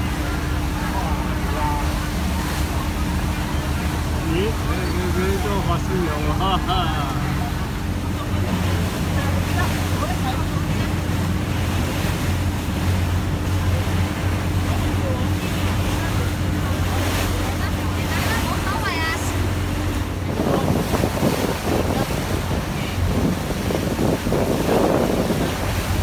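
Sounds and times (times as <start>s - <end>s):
boat engine humming: 0.0s - 26.0s
water washing along hull: 0.0s - 26.0s
wind buffeting microphone: 17.8s - 26.0s.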